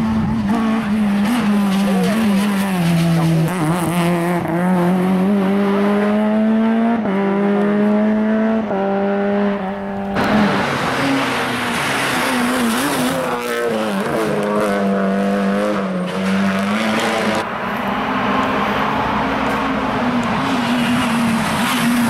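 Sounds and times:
rally car engine at full throttle: 0.0s - 22.0s
rough noisy car engine rush: 0.0s - 22.0s.

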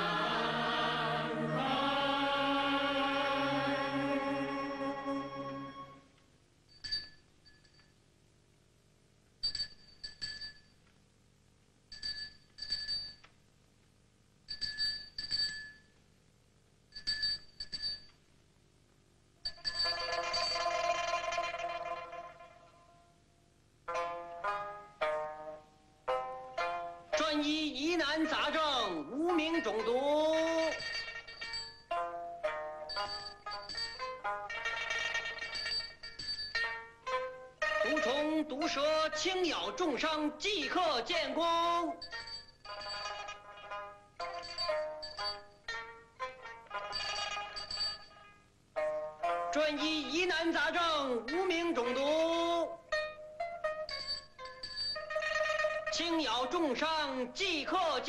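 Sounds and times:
man calling sing-song street cry: 27.2s - 30.7s
hand bell jingling: 44.2s - 45.6s, 53.6s - 55.1s.

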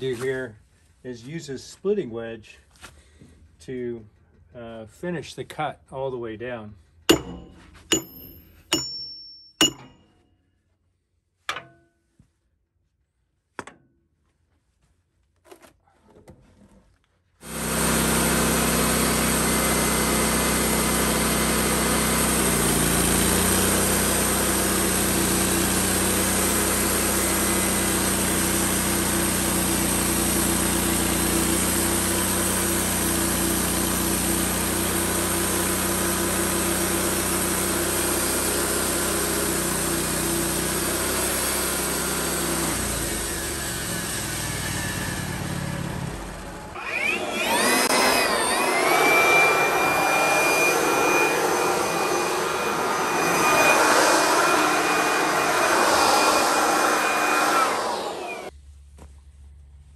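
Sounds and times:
band sawmill cutting log: 7.1s - 8.9s, 17.4s - 58.5s
leaf blower whine: 17.4s - 59.1s.

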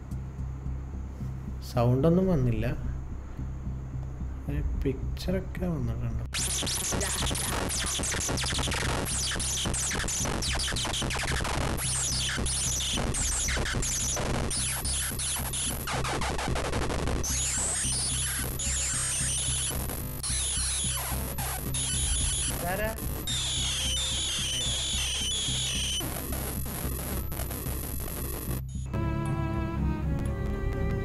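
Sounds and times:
low electronic drone: 0.0s - 31.0s
crackling clicks: 6.3s - 28.9s
harsh electronic pitch sweeps: 6.3s - 29.8s
slow tonal melody: 28.9s - 31.0s.

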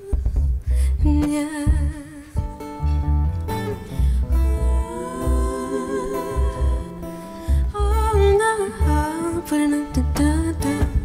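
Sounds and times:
woman singing wordlessly: 0.0s - 2.5s, 4.5s - 11.0s
guitar: 0.0s - 11.0s
deep bass beat: 0.1s - 9.1s.

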